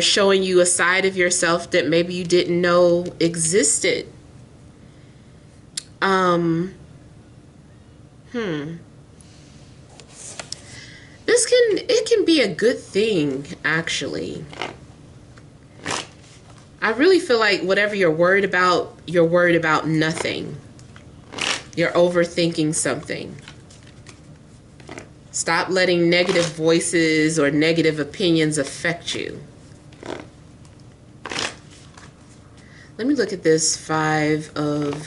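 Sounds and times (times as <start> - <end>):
cards rustling: 23.4 - 25.1, 29.9 - 32.4.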